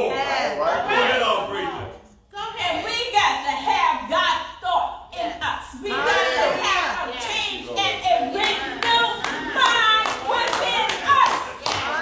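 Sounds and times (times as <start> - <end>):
rhythmic hand clapping: 8.2 - 12.0.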